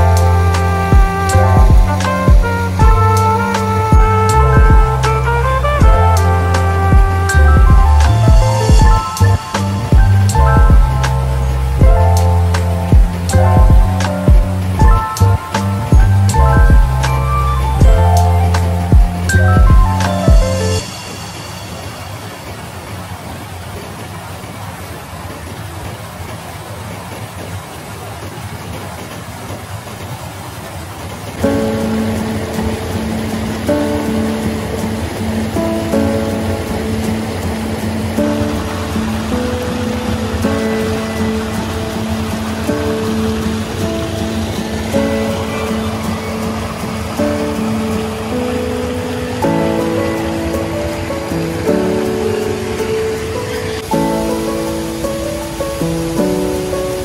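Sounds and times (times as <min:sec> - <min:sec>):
music with long held notes: 0:00.0 - 0:22.6, 0:31.4 - 0:57.0
small waterfall rushing: 0:00.0 - 0:57.0.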